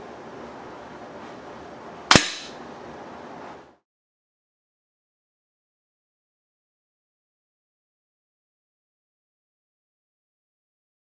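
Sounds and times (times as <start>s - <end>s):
low room noise: 0.0s - 3.9s
air pistol shot: 2.1s - 2.6s.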